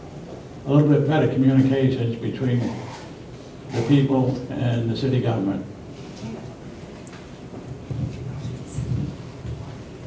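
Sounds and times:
microphone handling noise: 0:07.8 - 0:09.8.

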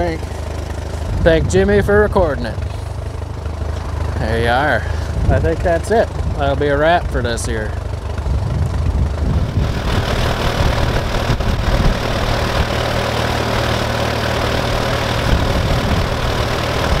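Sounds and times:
steady rushing noise: 0:00.0 - 0:17.0
tractor engine running: 0:00.0 - 0:17.0.

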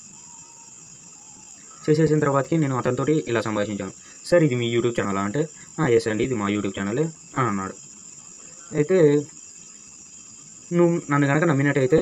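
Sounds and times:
steady high-pitched whine: 0:00.0 - 0:12.0.

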